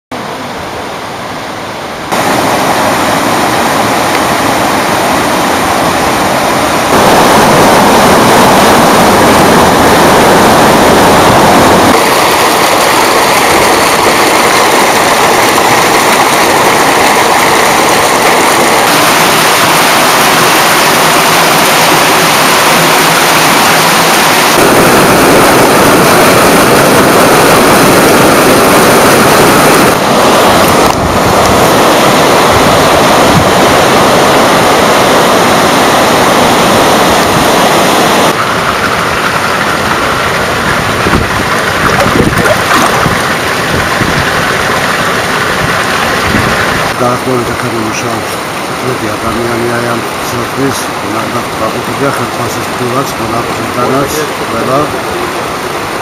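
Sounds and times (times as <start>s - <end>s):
water rushing and splashing: 0.1s - 56.0s.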